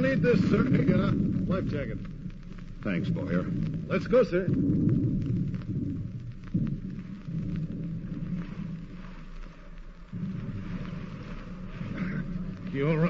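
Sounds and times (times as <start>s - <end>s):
low rumbling rushing water: 0.0s - 13.0s.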